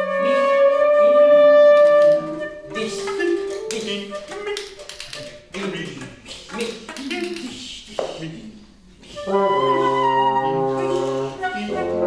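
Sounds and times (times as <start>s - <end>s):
wind quintet playing: 0.0s - 4.5s, 9.1s - 12.0s
voice-like sounds: 2.7s - 8.7s
sharp taps and clicks: 3.1s - 8.1s.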